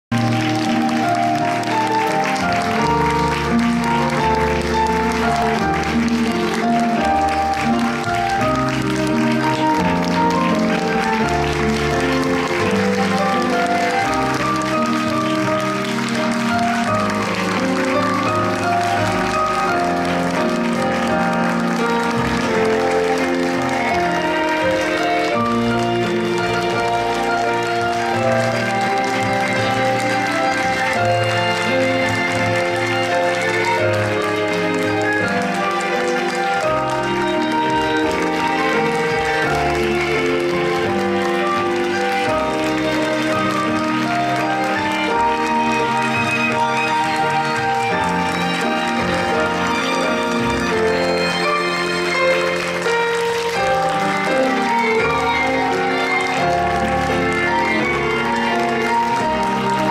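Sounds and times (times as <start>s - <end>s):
audience applauding: 0.1s - 59.9s
stage musical music: 0.1s - 59.9s.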